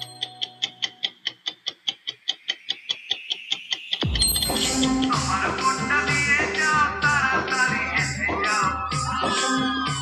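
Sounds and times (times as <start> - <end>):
clock ticking: 0.0 - 7.6
loud music with a beat: 2.9 - 10.0.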